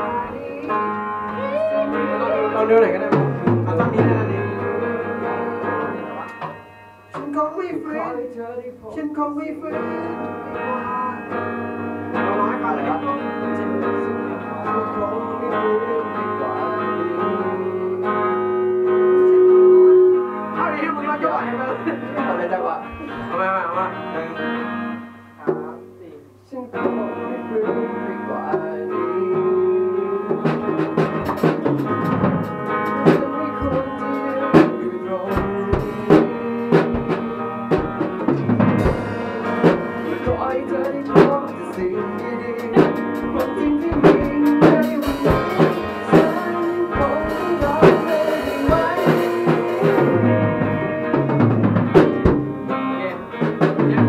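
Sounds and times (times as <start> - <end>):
electric guitars and bass chords: 0.0 - 7.2, 9.6 - 26.0, 26.7 - 54.0
drum kit hits: 2.9 - 7.4, 29.4 - 54.0.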